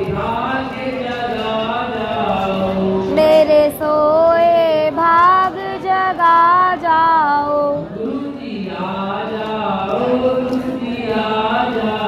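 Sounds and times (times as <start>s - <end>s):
high solo voice singing: 2.1s - 8.9s.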